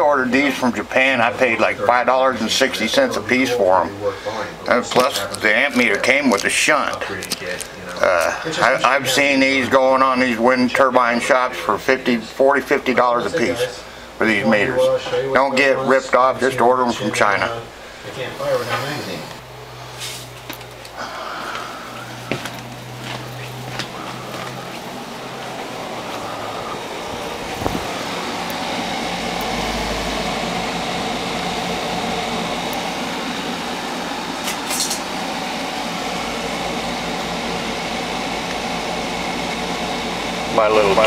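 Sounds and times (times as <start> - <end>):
fan-cooled machine whirring: 0.0 - 41.0
low electrical hum: 0.0 - 41.0.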